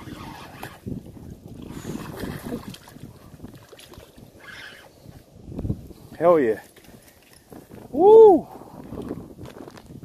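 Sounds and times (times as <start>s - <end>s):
wind on microphone: 0.0s - 10.0s
light water splashing: 2.0s - 4.3s.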